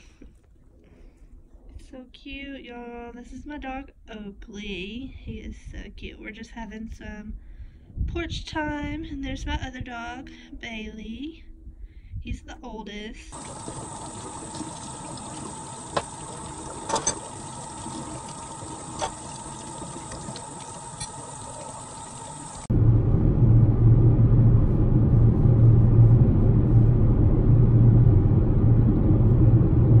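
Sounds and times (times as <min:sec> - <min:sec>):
faucet running into sink: 0:13.3 - 0:22.7
car cabin road rumble: 0:22.4 - 0:30.0.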